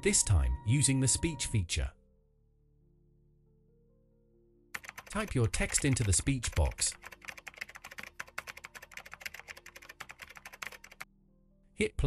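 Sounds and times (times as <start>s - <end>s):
fast typing on keyboard: 4.8s - 11.1s.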